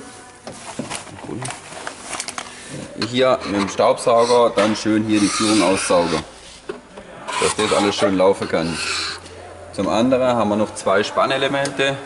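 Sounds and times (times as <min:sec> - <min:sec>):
pen scraping metal rail: 0:03.3 - 0:06.3, 0:07.3 - 0:09.2.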